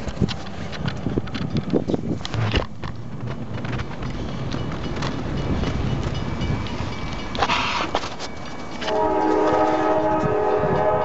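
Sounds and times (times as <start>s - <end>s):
train air horn long blast: 8.8s - 11.0s.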